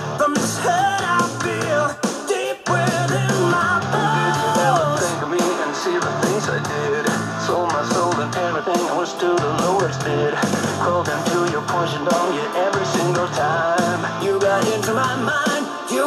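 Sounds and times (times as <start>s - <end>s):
person singing: 0.0s - 16.0s
rock song on small speaker: 0.0s - 16.0s.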